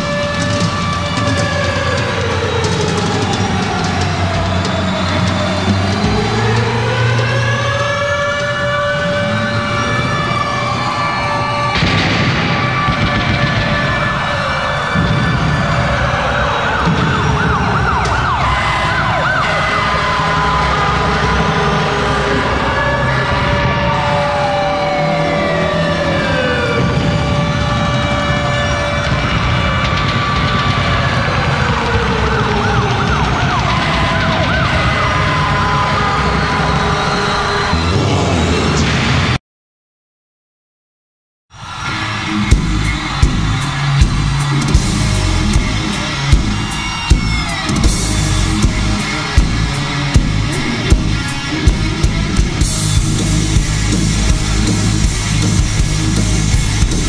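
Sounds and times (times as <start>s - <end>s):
siren-like wailing glides: 0.0s - 38.9s, 41.5s - 57.0s
sustained droning tones: 41.9s - 57.0s.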